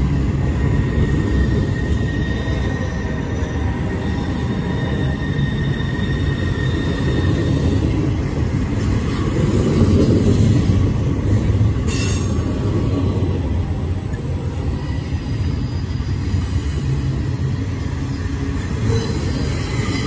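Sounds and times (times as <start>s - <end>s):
faint high wheel squeal: 0.0s - 9.4s, 11.8s - 20.0s
train wheels rumbling on rail: 0.0s - 20.0s.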